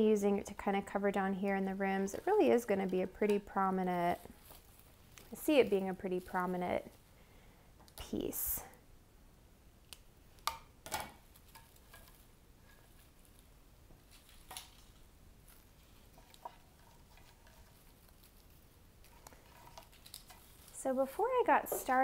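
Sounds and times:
branches being handled: 1.0 - 7.1, 11.3 - 22.0.

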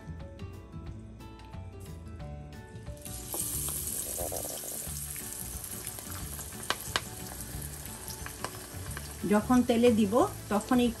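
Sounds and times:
batter sizzling in hot oil: 3.0 - 11.0
sharp pops from oil: 5.9 - 7.4, 8.1 - 9.1.

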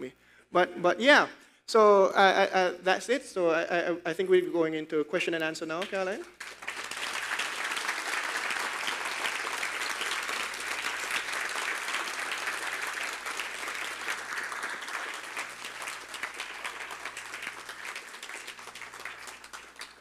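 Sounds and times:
audience applauding: 6.4 - 20.0.

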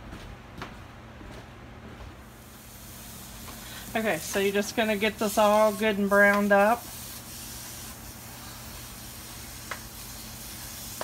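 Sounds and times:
sausage sizzling in a wok: 2.3 - 11.0.

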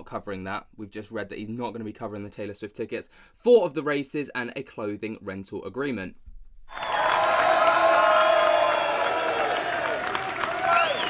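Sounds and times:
crowd cheering and whooping: 6.7 - 11.0
people clapping: 6.7 - 11.0.

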